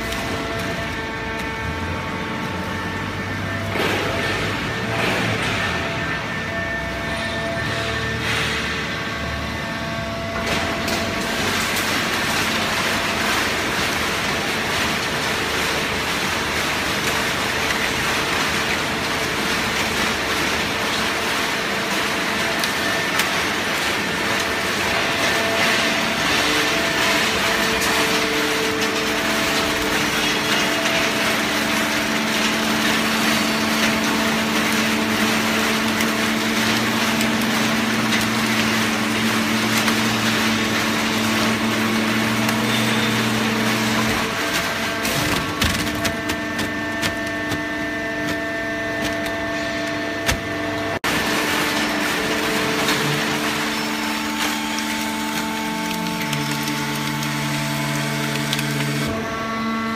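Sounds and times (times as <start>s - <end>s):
pump motor humming: 0.0s - 59.9s
waste crackling being crushed: 51.0s - 59.1s.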